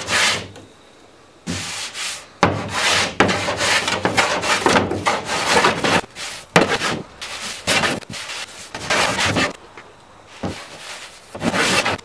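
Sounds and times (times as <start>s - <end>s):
hand plane scraping wood: 0.0s - 0.5s, 1.5s - 9.6s, 10.4s - 12.0s.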